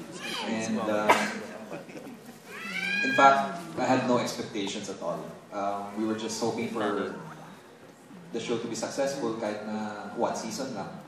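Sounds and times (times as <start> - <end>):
man speaking into a microphone: 0.3 - 1.4, 3.0 - 7.3, 8.3 - 11.0.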